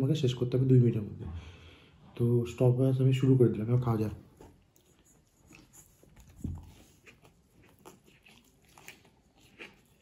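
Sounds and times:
chewing: 0:04.3 - 0:10.0
fingers working rice in bowl: 0:04.3 - 0:10.0.

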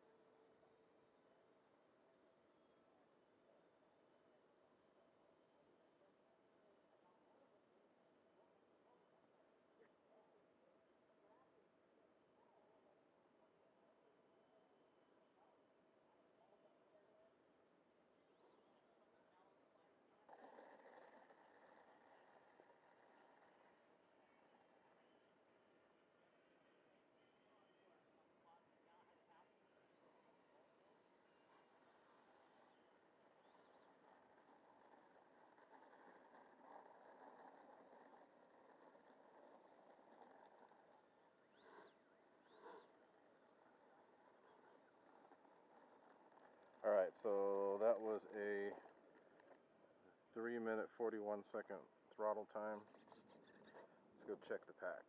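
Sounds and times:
faint chirps: 0:18.2 - 0:49.6, 0:52.7 - 0:54.0.

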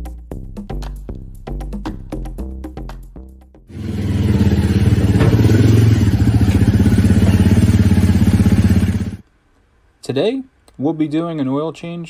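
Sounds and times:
motorcycle engine running: 0:03.7 - 0:09.2.

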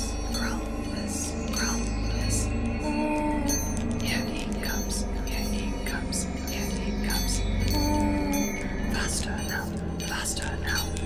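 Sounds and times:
low steady drone: 0:00.0 - 0:11.0
whispering voices: 0:00.0 - 0:11.0.

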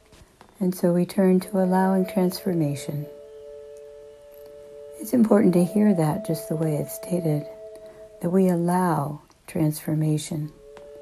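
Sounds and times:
sustained drone meditation music: 0:00.0 - 0:11.0.

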